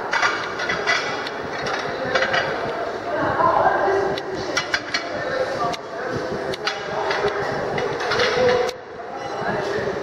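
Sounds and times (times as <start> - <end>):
restaurant hall din: 0.0 - 10.0.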